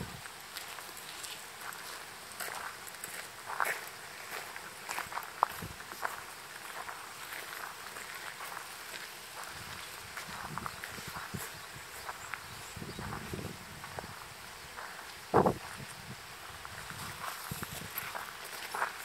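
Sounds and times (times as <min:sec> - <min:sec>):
footsteps on gravel: 0:00.0 - 0:19.0
outdoor ambience: 0:00.0 - 0:19.0.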